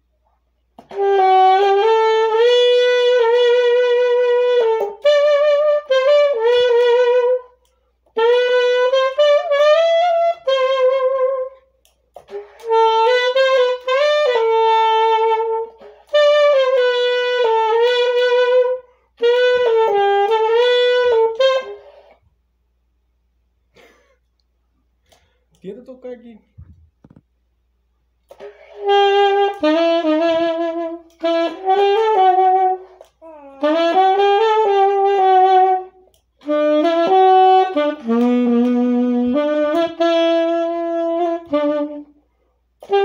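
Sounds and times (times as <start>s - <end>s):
saxophone playing slow melody: 0.8s - 22.2s, 28.3s - 43.0s.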